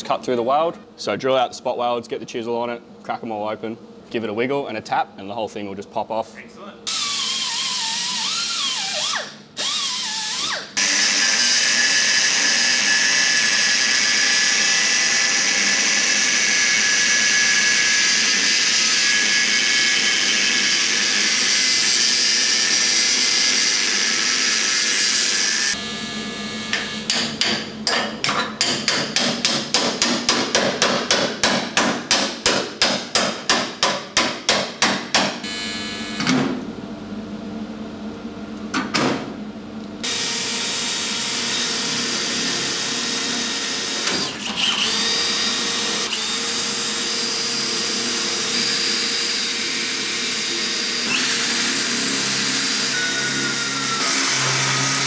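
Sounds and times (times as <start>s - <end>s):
angle grinder cutting steel: 6.9s - 25.8s
die grinder: 6.9s - 27.2s, 40.0s - 55.0s.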